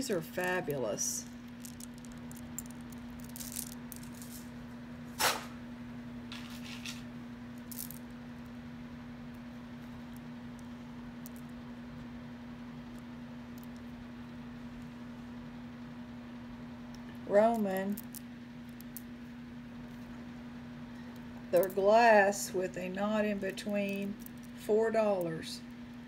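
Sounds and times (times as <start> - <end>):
jewelry clicking and rattling: 0.0 - 4.5, 7.6 - 8.1, 17.4 - 19.1, 23.5 - 24.6.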